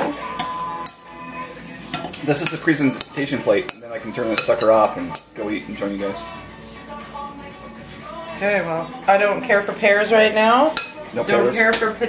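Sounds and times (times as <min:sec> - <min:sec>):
background music: 0:00.0 - 0:12.0
dishes and utensils clinking: 0:01.9 - 0:05.6, 0:10.7 - 0:11.9.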